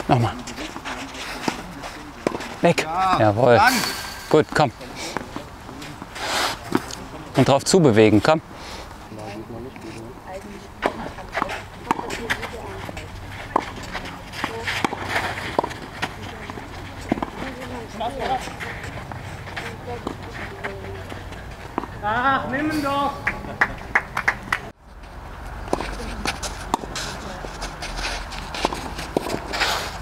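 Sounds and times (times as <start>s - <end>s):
footsteps on clay court: 0.0s - 7.4s, 8.9s - 24.0s, 24.9s - 30.0s.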